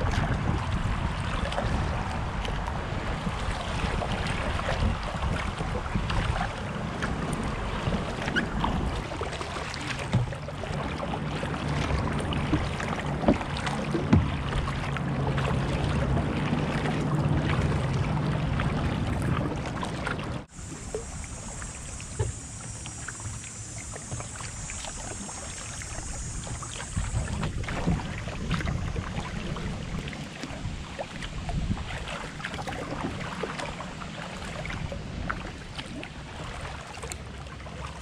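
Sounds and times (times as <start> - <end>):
paddle splashes: 0.0 - 38.0
water sloshing along hull: 0.0 - 38.0
steady high hiss: 20.5 - 27.4.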